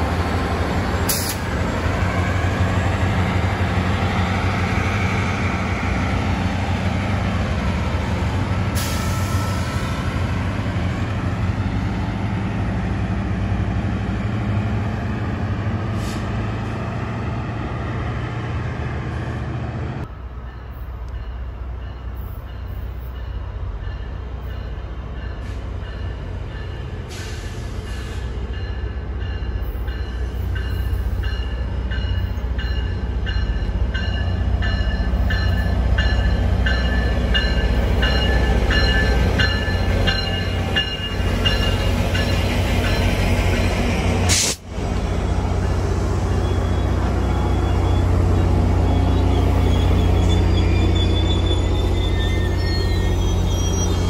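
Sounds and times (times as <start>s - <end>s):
diesel locomotive engine drone: 0.0s - 54.0s
train rolling past: 0.0s - 54.0s.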